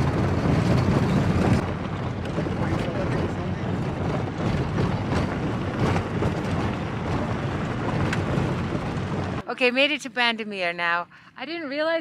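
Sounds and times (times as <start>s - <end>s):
wind blowing across microphone: 0.0s - 9.4s.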